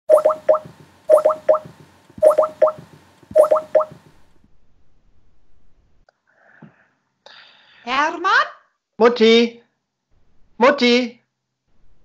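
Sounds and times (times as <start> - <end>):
video-call ringing tone: 0.1 - 2.8, 3.4 - 4.0.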